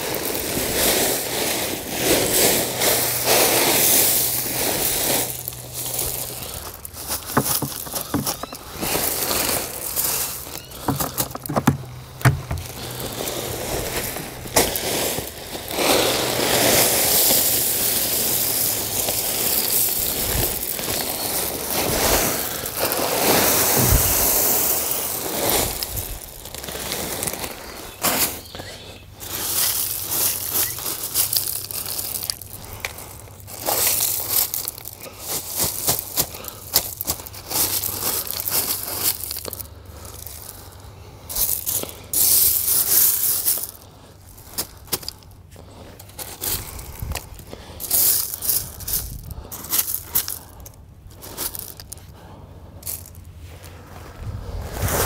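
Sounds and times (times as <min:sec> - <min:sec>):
gravel pouring from a bag: 0:00.0 - 0:52.2
stones crunching and scraping: 0:02.6 - 0:40.7, 0:41.3 - 0:54.4.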